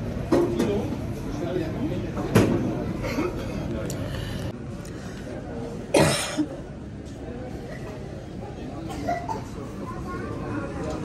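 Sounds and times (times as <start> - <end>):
murmur of terminal hall: 0.0 - 11.0
loud sharp cough: 5.9 - 6.5, 8.8 - 9.6.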